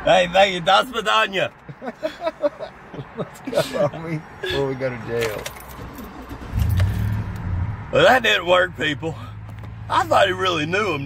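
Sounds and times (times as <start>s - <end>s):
car engine hum inside cabin: 4.6s - 11.0s.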